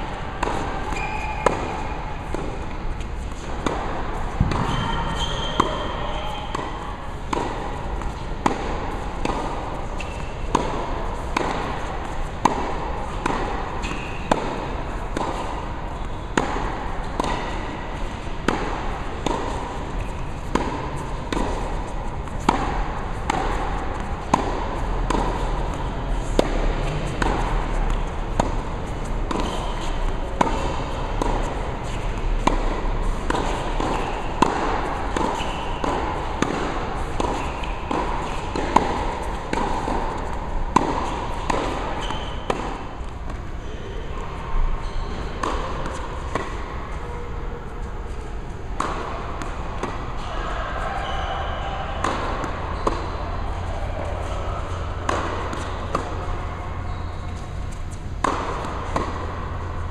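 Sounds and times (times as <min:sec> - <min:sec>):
balls bouncing on hard court: 0:00.0 - 0:59.9
racket striking tennis ball: 0:00.0 - 0:59.9.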